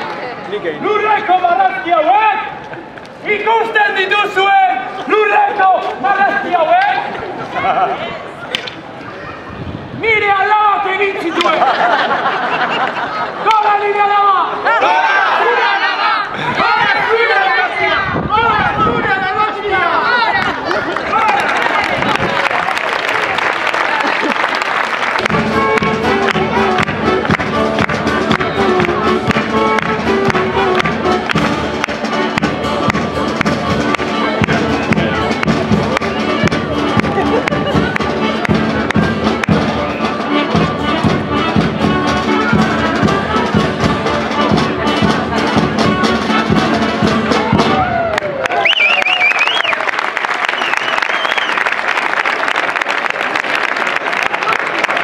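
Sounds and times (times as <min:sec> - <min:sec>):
brass band music: 0:25.0 - 0:48.0.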